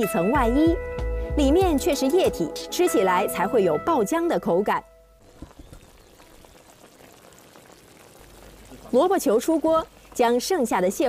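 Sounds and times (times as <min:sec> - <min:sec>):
water dripping and trickling: 0:05.2 - 0:11.0.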